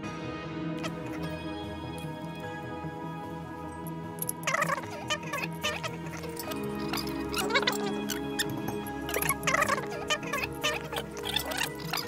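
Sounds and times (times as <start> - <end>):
soft background music: 0.0 - 12.0
metal parts clinking and scraping: 3.6 - 12.0.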